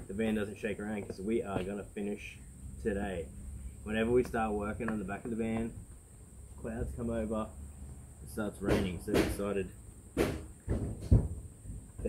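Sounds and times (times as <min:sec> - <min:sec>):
dull knock: 0:08.7 - 0:09.4, 0:10.2 - 0:11.4.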